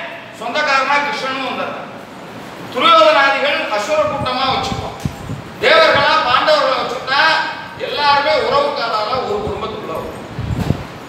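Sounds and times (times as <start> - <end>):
man speaking: 0.0 - 1.9, 2.7 - 5.0, 5.6 - 10.2.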